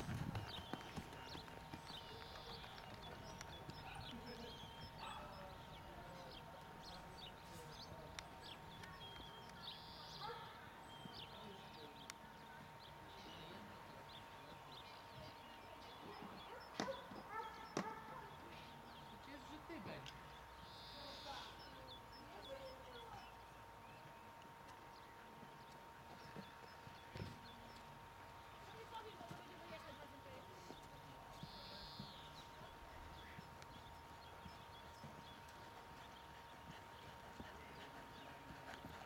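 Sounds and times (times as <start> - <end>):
horse trotting on sand: 0.0 - 7.7, 24.4 - 39.0.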